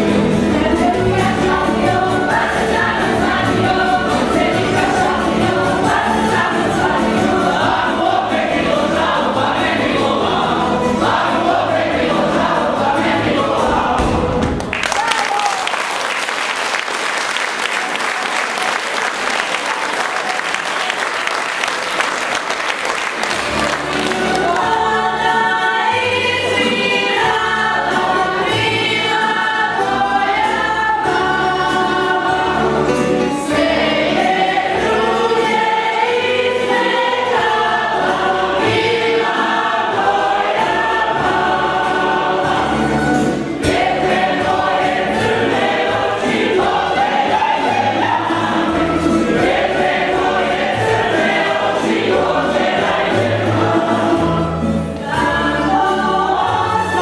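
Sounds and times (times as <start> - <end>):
voices singing along: 0.0 - 14.4, 23.2 - 57.0
folk band playing dance tune: 0.0 - 57.0
audience applause: 14.5 - 24.8.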